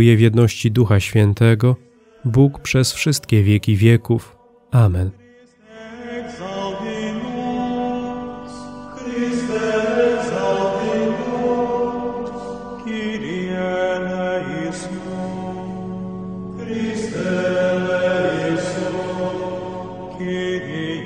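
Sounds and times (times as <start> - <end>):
slow chant-style singing: 1.8 - 21.0.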